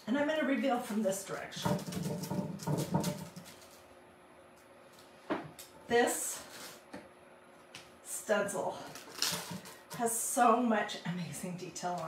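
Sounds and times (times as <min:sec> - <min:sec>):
plastic stencil peeling crackle: 0:08.8 - 0:09.8.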